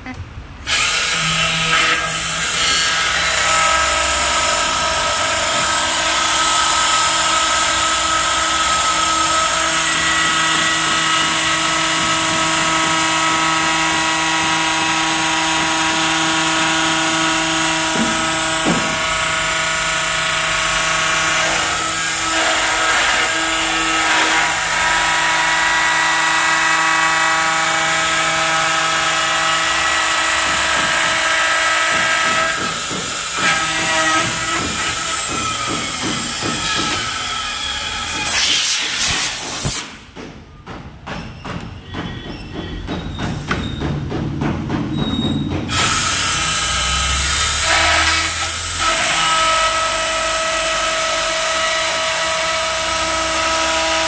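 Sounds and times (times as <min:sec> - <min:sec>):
end mill cutting plastic: 0:00.6 - 0:40.1, 0:44.8 - 0:54.0.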